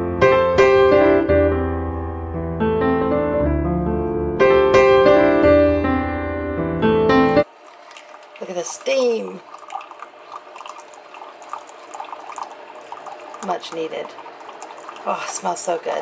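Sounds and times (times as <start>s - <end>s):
piano music: 0.0s - 7.5s
coffee maker hissing trickle: 7.5s - 16.0s
voice: 8.4s - 9.4s, 13.4s - 14.2s, 15.0s - 16.0s.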